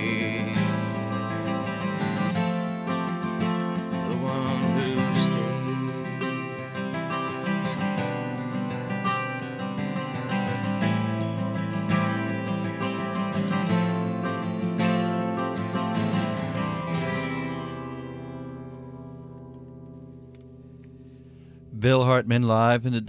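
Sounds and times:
acoustic guitar picking: 0.0s - 23.0s.

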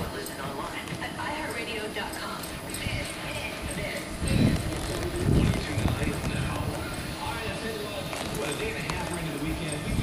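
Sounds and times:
horse hooves thudding on dirt: 0.0s - 10.0s
radio talk: 3.1s - 10.0s.

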